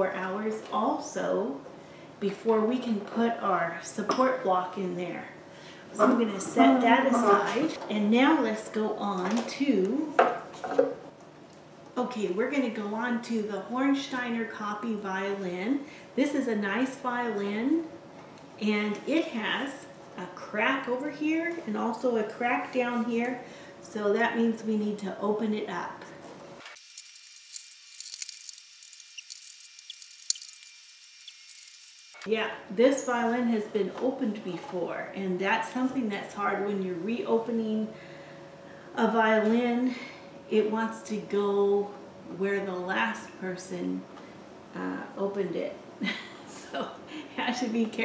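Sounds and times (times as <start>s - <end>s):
small clicks and ticks: 26.8s - 32.2s.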